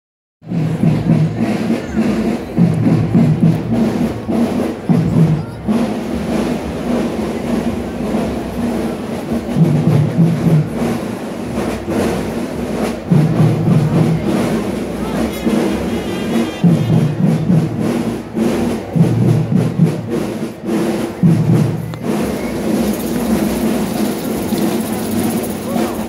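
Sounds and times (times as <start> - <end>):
drum and bugle marching band: 0.4 - 26.0
heavy low drum beats: 0.4 - 26.0
sharp drum strikes: 0.5 - 26.0.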